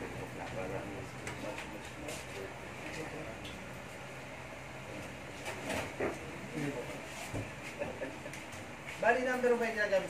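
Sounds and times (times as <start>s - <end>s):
people talking: 0.0s - 3.6s
steady hum: 0.0s - 10.0s.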